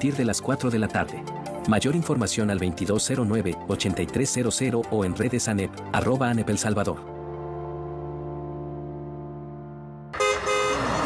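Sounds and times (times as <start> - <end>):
commercial music: 0.0 - 11.0
held synth chord: 7.0 - 11.0
loud vehicle horn honk: 10.2 - 11.0.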